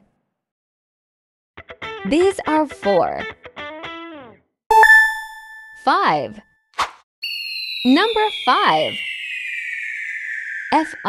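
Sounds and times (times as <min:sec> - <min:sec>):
bell-like ding: 0:04.7 - 0:05.9.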